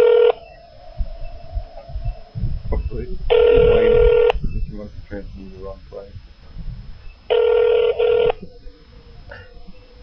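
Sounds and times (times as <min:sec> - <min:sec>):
telephone line beep: 0:00.0 - 0:00.4, 0:03.3 - 0:04.4, 0:07.3 - 0:08.4.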